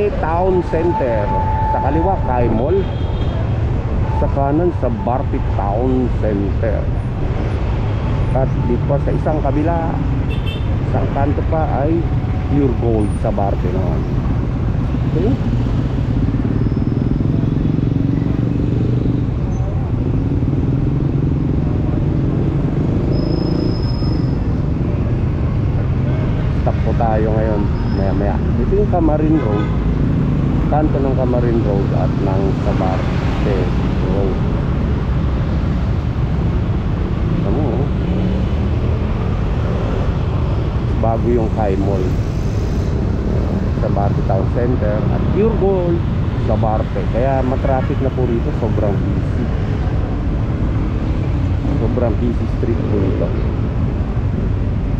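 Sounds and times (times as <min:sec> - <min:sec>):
street traffic rumble: 0:00.0 - 0:54.9
vehicles idling and passing: 0:00.0 - 0:54.9.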